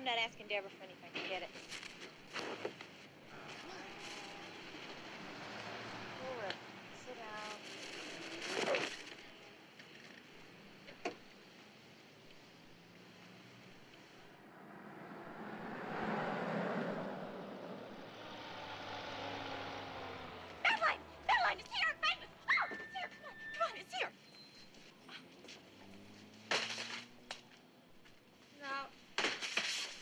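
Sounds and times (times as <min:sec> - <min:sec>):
vehicles passing: 0:00.0 - 0:29.2.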